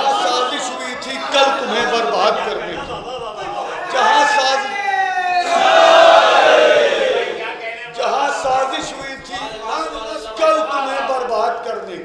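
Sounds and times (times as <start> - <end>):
crowd chanting in unison: 5.4 - 8.4.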